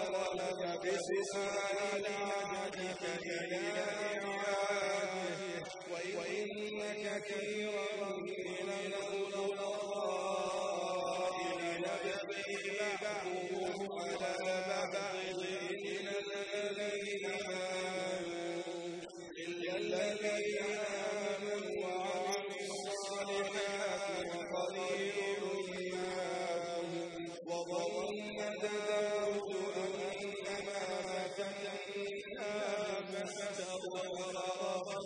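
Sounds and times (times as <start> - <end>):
man chanting recitation: 0.0 - 35.0.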